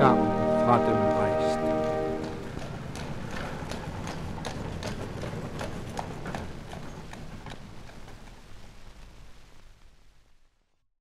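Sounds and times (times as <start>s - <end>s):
music chord: 0.0s - 2.5s
horse hooves clip-clopping: 0.9s - 10.2s.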